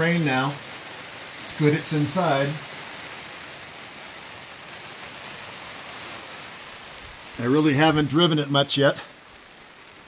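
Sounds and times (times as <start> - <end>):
rain on a trailer roof: 0.0 - 10.0.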